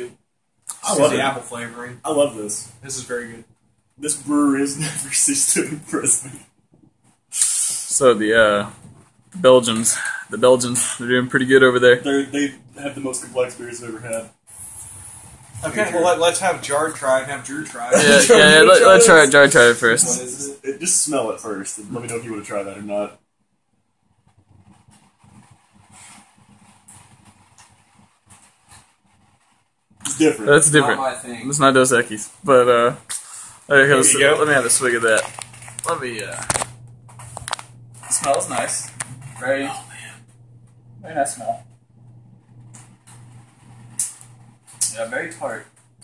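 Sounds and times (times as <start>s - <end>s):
person speaking: 0.7s - 1.9s, 17.8s - 20.5s
steady low hum: 0.8s - 46.0s
person sniffing: 7.3s - 7.9s
short hiss: 7.3s - 8.0s.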